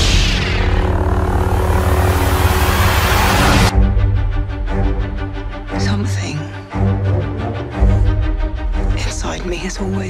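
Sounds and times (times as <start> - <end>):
lightsaber humming: 0.0 - 3.7
loud rushing noise: 0.0 - 3.7.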